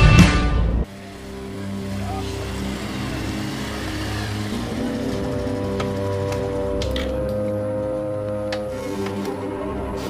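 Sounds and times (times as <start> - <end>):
background music: 0.0 - 10.0
motorcycle engine running: 0.9 - 7.2.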